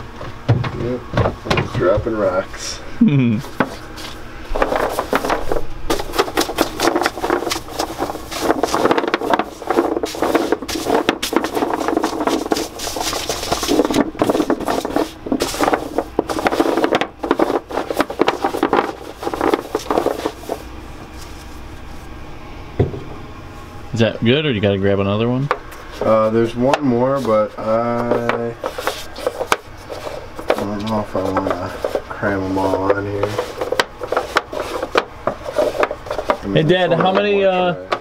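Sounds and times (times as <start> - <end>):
bristle brush scraping: 3.4 - 22.1, 25.7 - 37.5.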